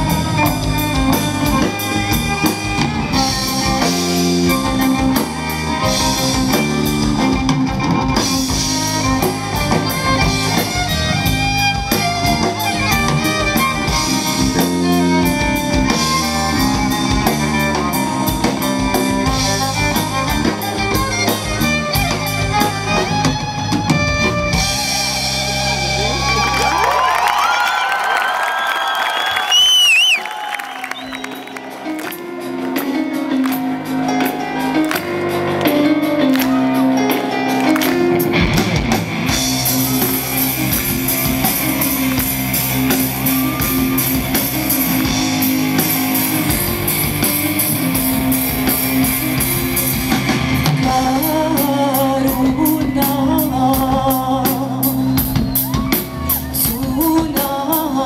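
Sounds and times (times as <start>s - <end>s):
live rock band notes ringing: 0.0s - 26.8s, 30.6s - 58.0s
crowd cheering and whistling: 25.8s - 50.9s, 51.6s - 57.2s
shrill wavering whistle: 28.6s - 31.6s.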